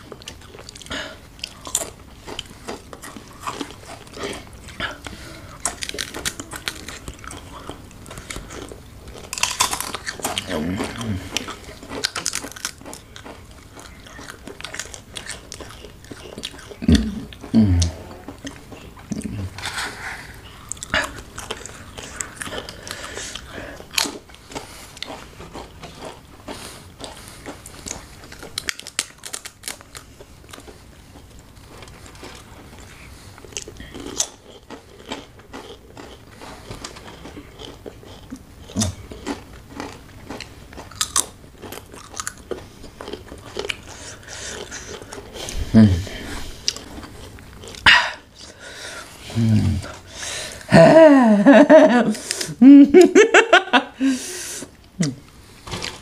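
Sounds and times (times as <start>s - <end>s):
crunching and chewing chips: 0.0s - 50.7s
people humming: 16.8s - 18.2s, 45.4s - 46.4s, 48.7s - 54.4s.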